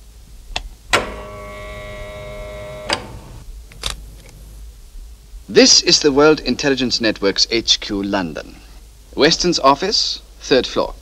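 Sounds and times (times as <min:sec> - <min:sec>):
electronic hum of held tones: 0:00.9 - 0:03.5.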